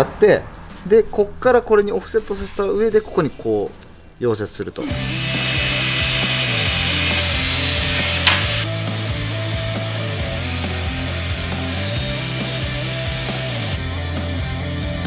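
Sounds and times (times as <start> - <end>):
angle grinder cutting steel: 4.8 - 13.8
background music with bass: 4.8 - 15.0.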